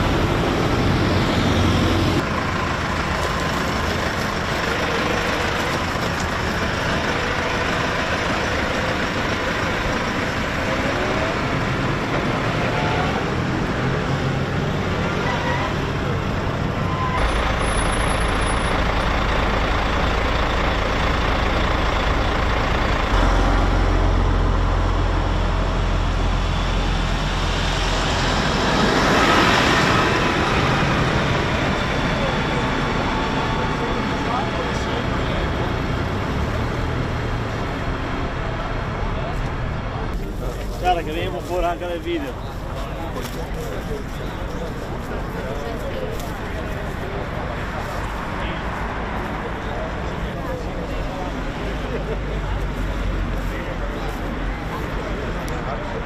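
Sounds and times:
tractor diesel engines: 0.0 - 56.0
traffic noise: 0.0 - 56.0.

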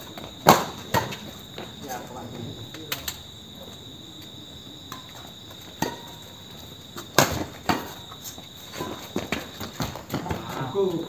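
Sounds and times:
crickets trilling: 0.0 - 11.0
racket hitting shuttlecock: 0.4 - 1.2, 5.8 - 6.2, 7.0 - 8.1.

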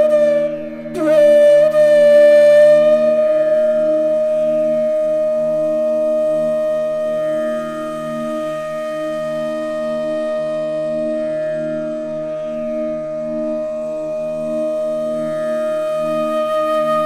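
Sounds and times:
bamboo flute long note: 0.0 - 17.0
low pulsing drone: 0.0 - 17.0.

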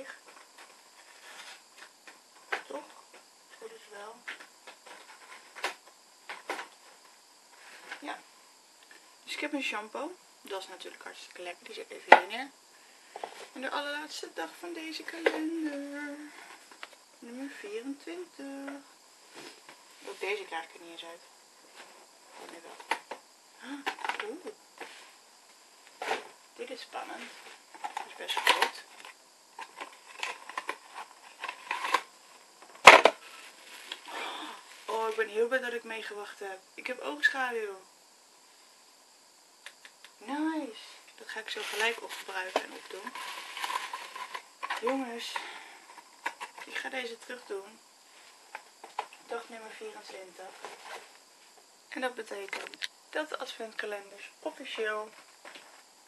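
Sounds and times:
faint steady hiss: 0.0 - 56.0
cardboard rustling and scraping: 0.4 - 1.9, 4.7 - 7.0, 26.0 - 26.4, 27.2 - 32.1, 32.8 - 34.1, 41.5 - 45.0, 49.9 - 51.2.

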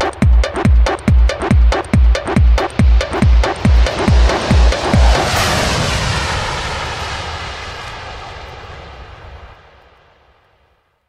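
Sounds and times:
electronic dance kick drum: 0.0 - 5.3
long rushing noise: 1.8 - 9.8.

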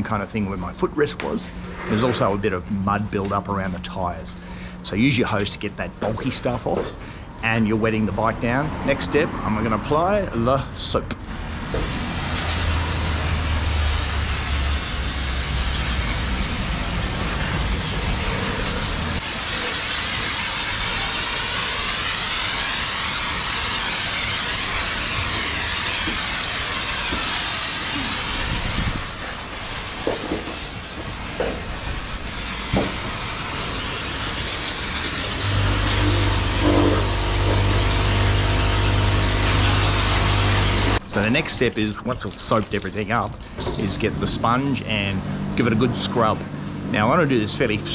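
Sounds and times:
foam spray hissing: 11.2 - 46.1
low motor hum: 30.8 - 41.3.

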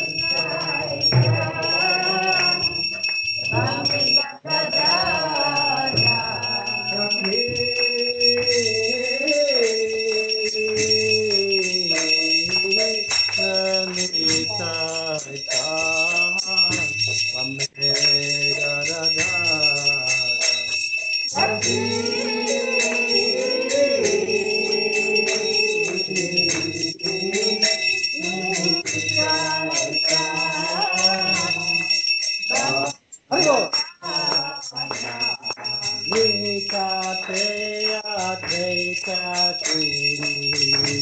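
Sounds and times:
jingling percussion: 0.0 - 41.0
voices singing a chant: 0.0 - 41.0.

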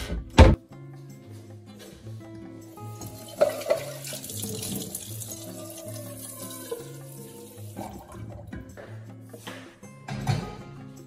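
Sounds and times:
background music: 0.0 - 11.0
tap running into metal pot: 3.0 - 5.0.

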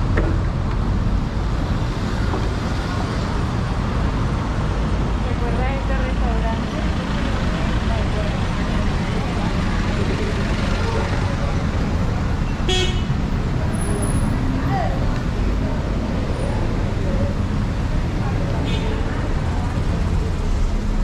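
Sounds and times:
indistinct chatter: 5.2 - 21.0.

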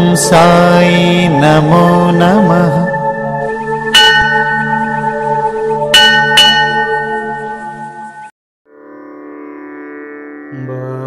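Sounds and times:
low drone: 0.4 - 8.3
bell ringing: 4.0 - 8.3.

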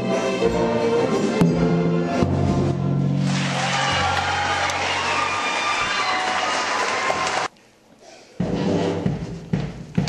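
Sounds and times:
audience noise: 0.8 - 7.5.

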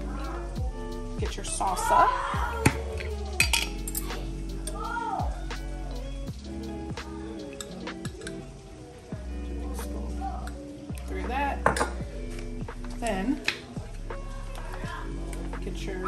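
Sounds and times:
background music: 0.0 - 16.0
metal spoon clinking glass: 3.0 - 4.8.

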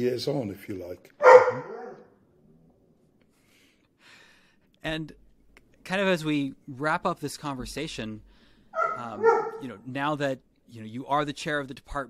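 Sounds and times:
dog barking: 1.2 - 2.1, 8.8 - 9.7.

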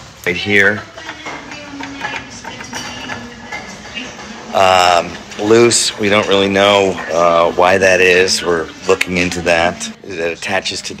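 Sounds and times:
workshop background noise: 0.0 - 11.0.

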